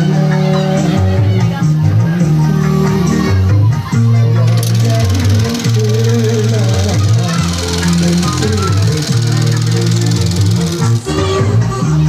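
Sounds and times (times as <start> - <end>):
film soundtrack music with heavy bass: 0.0 - 12.0
film projector whirring: 4.4 - 11.1.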